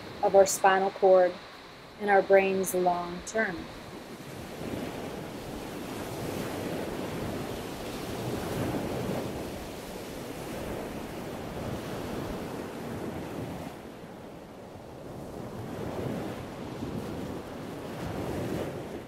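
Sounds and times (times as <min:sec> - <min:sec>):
ocean waves washing: 0:00.0 - 0:19.0.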